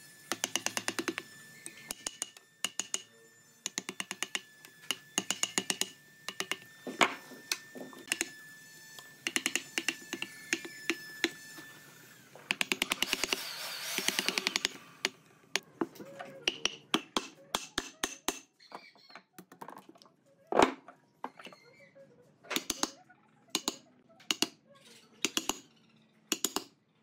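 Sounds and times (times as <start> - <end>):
chisel tapping into wood: 1.9 - 3.0, 5.2 - 6.6, 16.4 - 18.4, 26.3 - 26.7.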